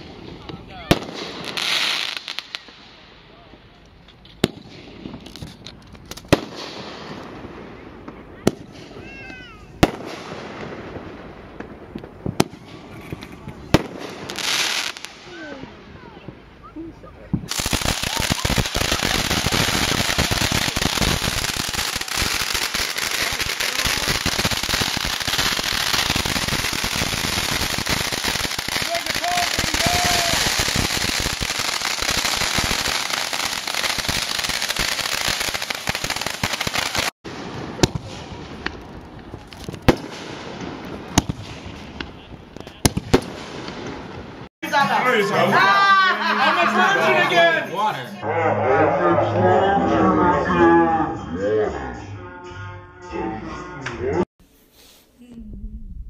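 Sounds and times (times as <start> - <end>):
firework bangs: 0.0 - 3.1, 4.4 - 16.4, 17.3 - 44.5
firework crackling and hissing: 0.0 - 3.1, 4.4 - 16.3, 17.2 - 44.5.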